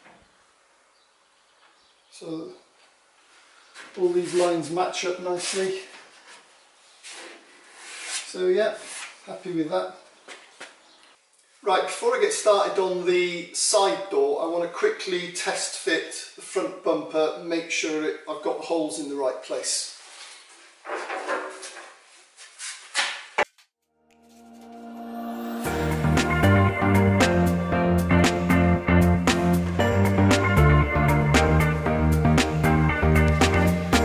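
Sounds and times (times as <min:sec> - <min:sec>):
scraping rustle: 0:03.2 - 0:09.3, 0:19.9 - 0:23.4.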